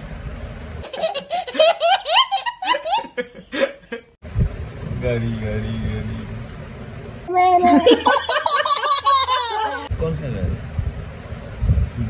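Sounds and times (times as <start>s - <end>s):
toddler laughing: 0.8s - 3.2s, 7.3s - 9.9s.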